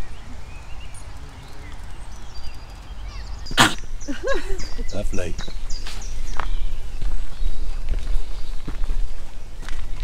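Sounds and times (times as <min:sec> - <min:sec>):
faint birdsong: 0:00.0 - 0:10.0
wind rumbling on microphone: 0:00.0 - 0:10.0.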